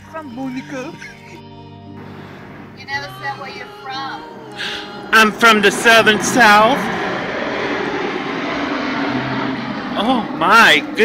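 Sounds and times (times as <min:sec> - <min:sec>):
engine drone: 0:02.0 - 0:11.0.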